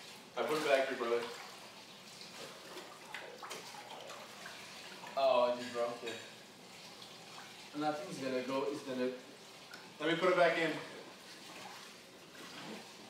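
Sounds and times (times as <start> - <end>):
pool water lapping and sloshing: 0.0 - 13.0.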